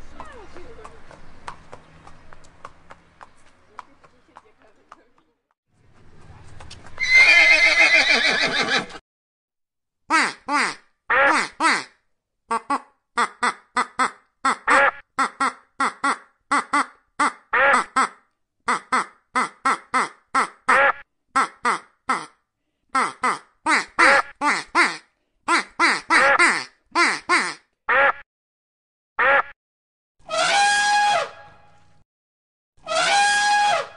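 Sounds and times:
horse whinnying: 0:07.0 - 0:09.0
goose honking calls: 0:13.2 - 0:18.1, 0:30.3 - 0:31.5, 0:32.8 - 0:33.9.

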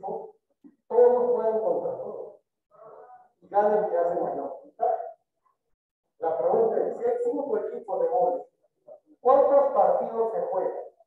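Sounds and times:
man speaking: 0:00.0 - 0:05.2, 0:06.2 - 0:11.0.

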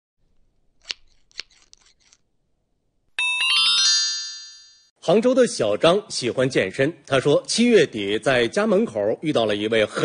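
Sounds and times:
bright chiming chord: 0:03.2 - 0:04.9.

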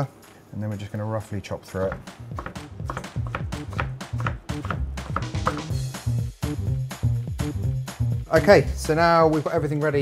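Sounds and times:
knife chopping on cutting board: 0:01.8 - 0:05.8
background music with bass line: 0:01.8 - 0:10.0.

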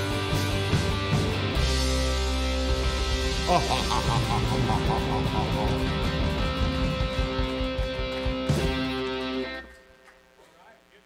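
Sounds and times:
live band playing loudly: 0:00.0 - 0:09.5.

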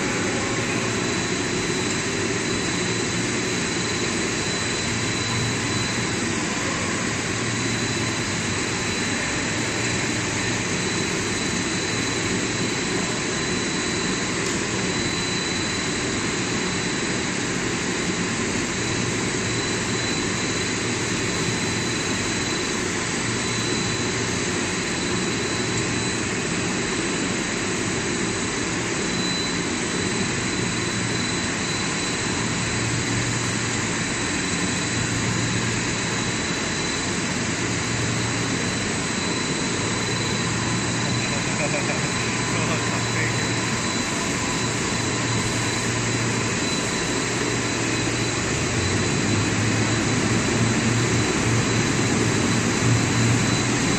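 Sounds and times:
thin high whine: 0:00.0 - 0:53.9
machinery noise: 0:33.1 - 0:53.9.

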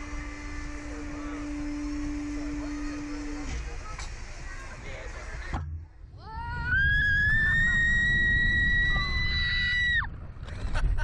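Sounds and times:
machine hum over low rumble: 0:00.0 - 0:11.0.

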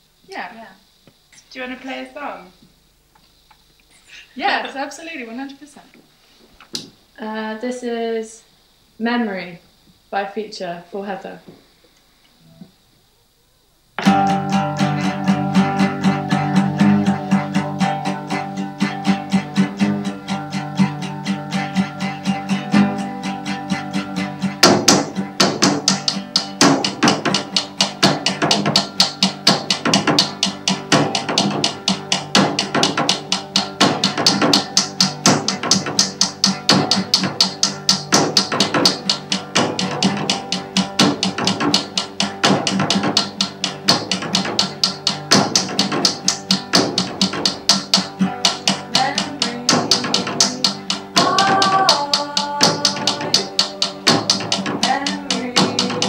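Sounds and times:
acoustic guitar strumming: 0:13.9 - 0:56.0
small drum struck with sticks: 0:23.7 - 0:56.0.

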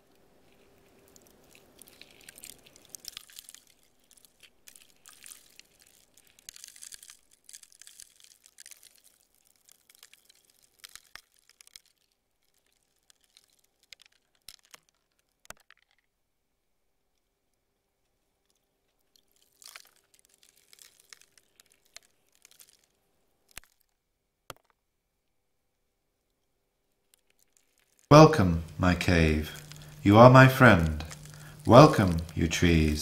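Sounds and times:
faint clicking and crackling: 0:00.0 - 0:16.2, 0:17.1 - 0:24.8, 0:26.2 - 0:33.0
low steady hum: 0:28.1 - 0:33.0.

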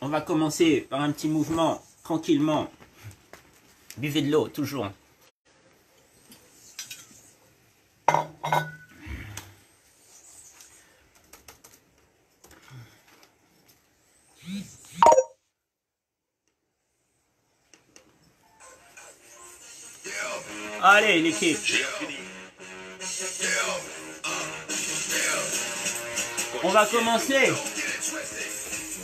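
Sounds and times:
music: 0:18.4 - 0:29.0.

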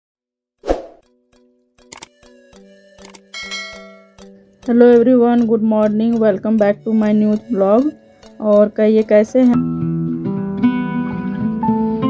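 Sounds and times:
held musical notes: 0:02.3 - 0:09.7.

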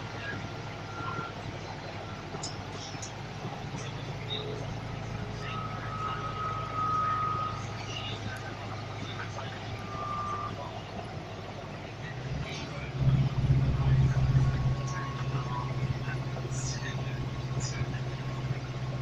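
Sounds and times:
bus diesel engine humming: 0:00.0 - 0:19.0.

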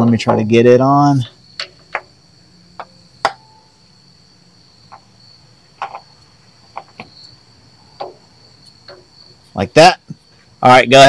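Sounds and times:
light clicks and knocks: 0:05.8 - 0:07.4, 0:08.0 - 0:09.6.

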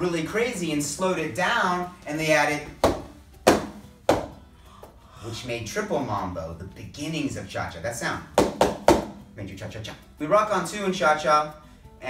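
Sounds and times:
sharp percussive hits: 0:02.8 - 0:04.4, 0:08.4 - 0:09.3.

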